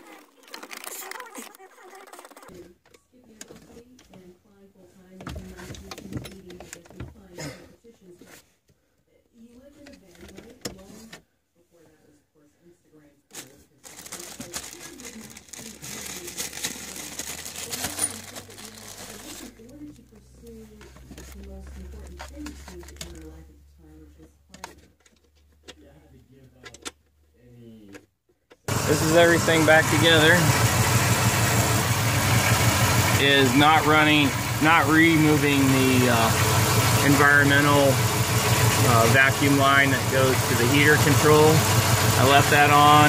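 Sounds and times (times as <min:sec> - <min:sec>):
hands handling wiring and plastic: 0:00.0 - 0:02.5, 0:13.3 - 0:19.8.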